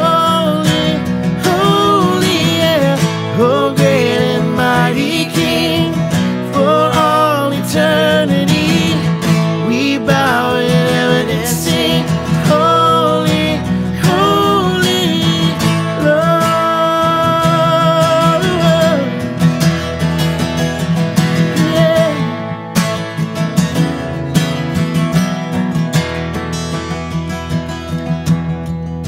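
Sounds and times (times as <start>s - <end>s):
man singing: 0.0s - 19.3s, 21.2s - 22.9s
strummed acoustic guitars: 0.0s - 29.0s.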